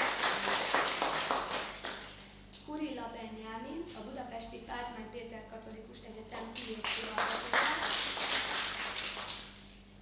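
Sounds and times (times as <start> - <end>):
small audience clapping: 0.0 - 2.4, 6.4 - 9.8.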